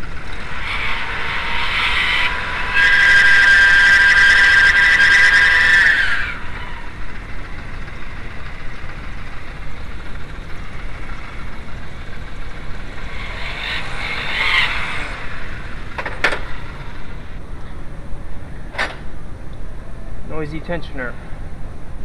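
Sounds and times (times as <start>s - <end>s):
belt tensioner whine: 0.0s - 22.0s.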